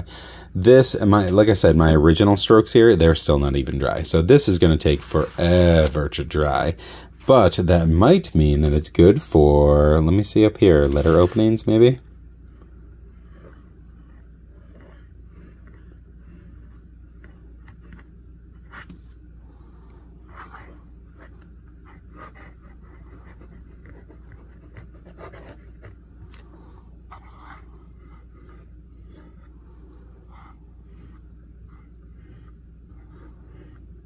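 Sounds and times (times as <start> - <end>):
steady low hum: 0.0 - 34.0
pen nib scratching on paper: 12.5 - 18.9, 20.2 - 26.0, 27.1 - 34.0.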